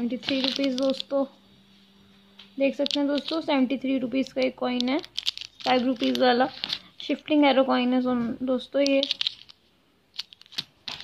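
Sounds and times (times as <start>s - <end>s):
plastic crinkling: 0.1s - 1.2s, 2.7s - 3.6s, 4.2s - 7.0s, 8.8s - 11.0s
coins in plastic sleeves clicking: 0.2s - 1.2s, 2.7s - 3.5s, 4.2s - 6.9s, 8.8s - 11.0s.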